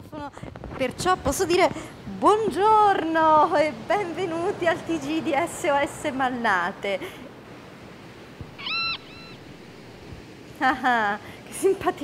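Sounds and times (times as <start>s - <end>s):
high-pitched animal cry: 8.5s - 10.0s.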